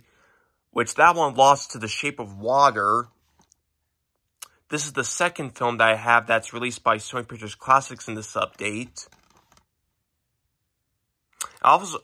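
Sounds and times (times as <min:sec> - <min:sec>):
person speaking: 0:00.7 - 0:03.5, 0:04.4 - 0:09.2, 0:11.4 - 0:12.0.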